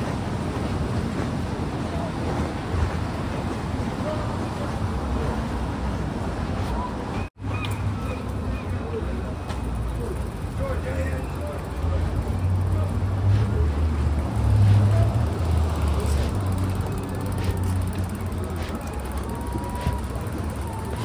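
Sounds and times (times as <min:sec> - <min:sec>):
low rumble of road traffic: 0:00.0 - 0:21.0
faint voices of people: 0:14.7 - 0:21.0.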